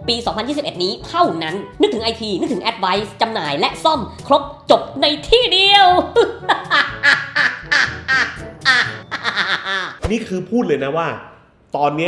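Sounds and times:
music: 0.0s - 9.8s
high-pitched laughter bursts: 6.2s - 10.0s.

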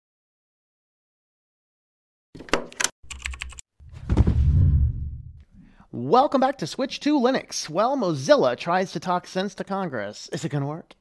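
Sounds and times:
rapid typing-like clicks: 2.7s - 3.6s
deep low swell: 3.9s - 5.4s.

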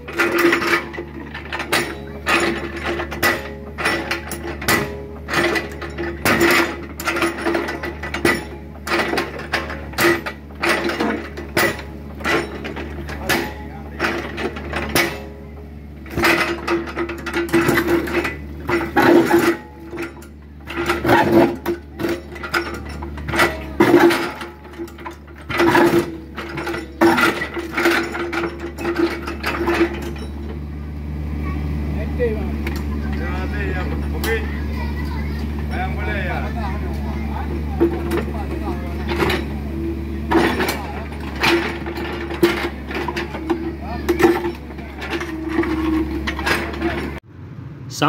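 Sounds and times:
excavator engine hum: 0.0s - 48.0s.

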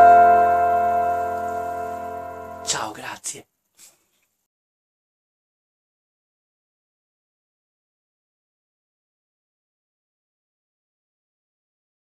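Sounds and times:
sustained keyboard chord: 0.0s - 2.9s.

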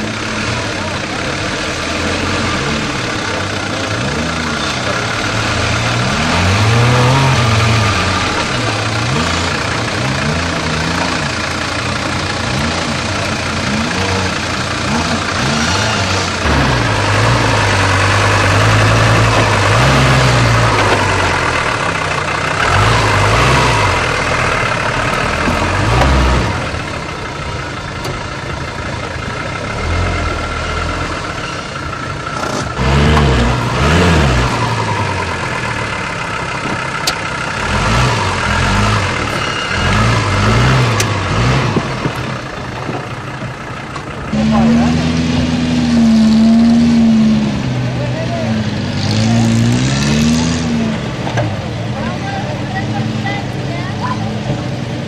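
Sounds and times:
off-road vehicle engine revving: 0.0s - 55.0s.

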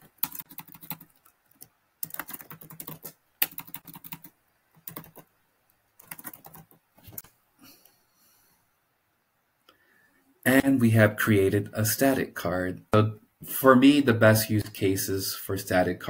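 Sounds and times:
typing on computer keyboard: 0.0s - 5.3s, 6.0s - 7.2s.

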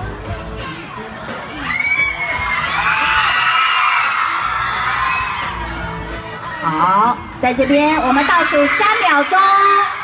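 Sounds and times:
crowd screaming and cheering: 0.0s - 10.0s.

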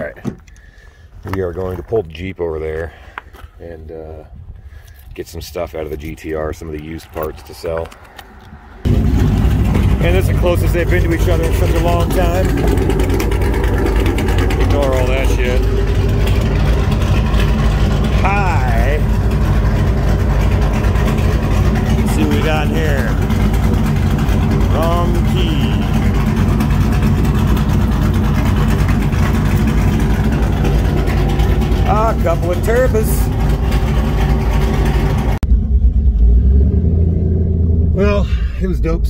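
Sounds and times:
vehicle noise: 0.0s - 39.0s
car engine idling: 5.6s - 39.0s.

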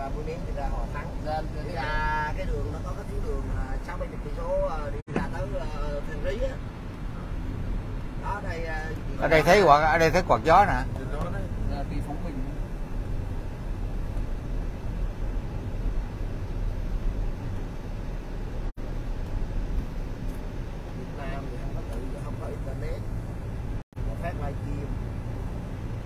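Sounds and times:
car road and engine noise: 0.0s - 26.0s.

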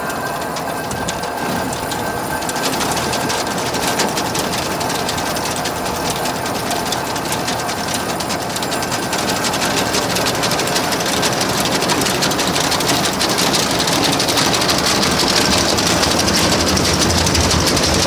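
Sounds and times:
conveyor rapid metallic clatter: 0.0s - 18.0s
truck engine running: 0.0s - 18.0s.

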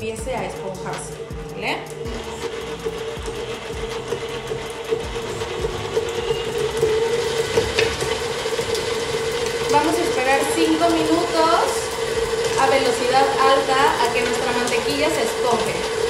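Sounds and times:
stand mixer motor whine: 0.0s - 16.0s.

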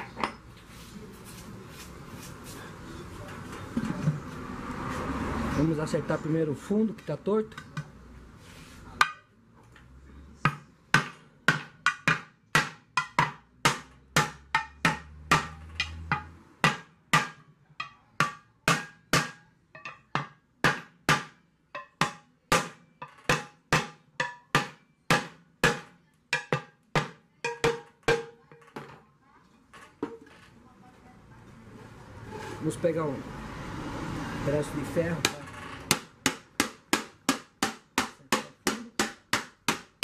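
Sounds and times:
hammer striking aluminium pot: 10.5s - 28.9s.

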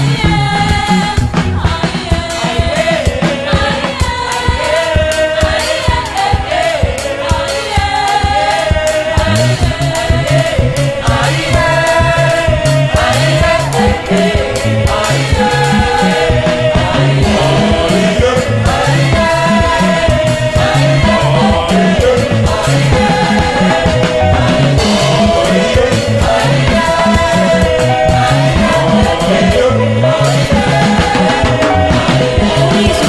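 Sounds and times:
gospel choir singing: 0.0s - 33.0s
live band with drum beat: 0.0s - 33.0s.

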